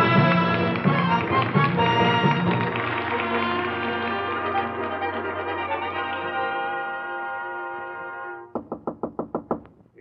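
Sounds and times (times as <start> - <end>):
knocking on door: 8.6 - 9.8.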